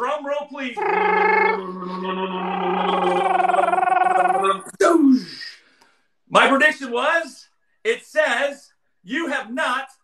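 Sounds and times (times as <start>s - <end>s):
man laughing: 0.8s - 4.7s
man's voice rolled trill: 0.8s - 5.0s.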